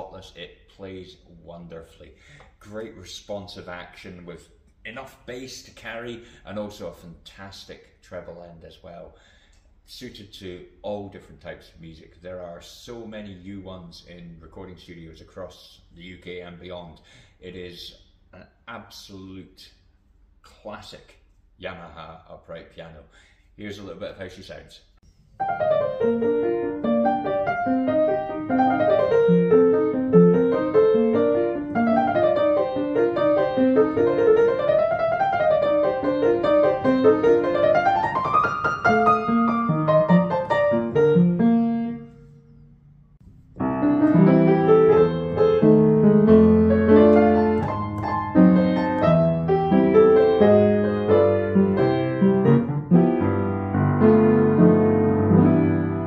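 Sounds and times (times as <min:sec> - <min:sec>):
upright piano playing: 0:25.4 - 0:42.4, 0:43.6 - 0:56.0.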